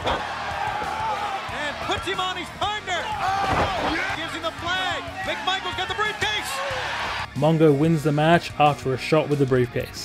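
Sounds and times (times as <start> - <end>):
arena crowd noise: 0.0 - 7.3
background music: 0.0 - 10.0
men commentating: 0.8 - 10.0.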